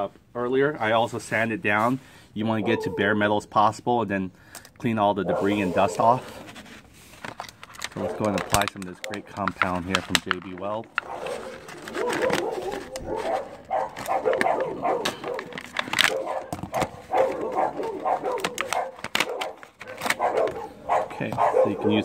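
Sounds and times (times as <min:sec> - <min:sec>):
plastic packaging crinkling: 0:05.4 - 0:22.0.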